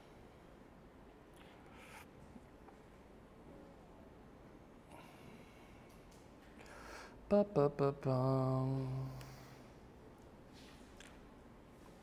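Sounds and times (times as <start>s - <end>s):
man humming a tune: 7.3s - 9.4s.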